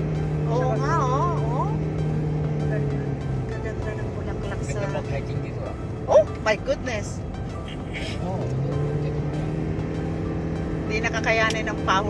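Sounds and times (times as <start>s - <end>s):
background music with held notes: 0.0s - 12.0s
road and engine noise inside car: 0.0s - 12.0s.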